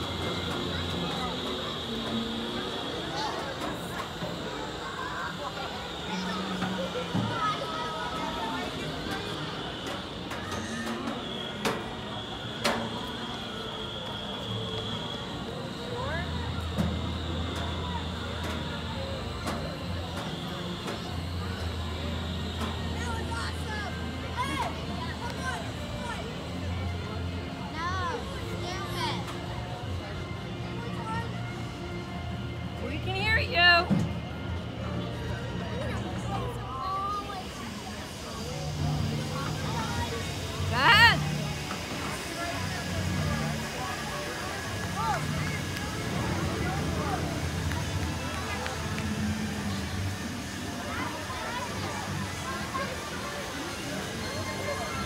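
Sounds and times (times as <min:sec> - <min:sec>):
music from ride: 0:00.0 - 0:55.0
people's voices: 0:00.0 - 0:55.0
steady low hum: 0:00.0 - 0:55.0.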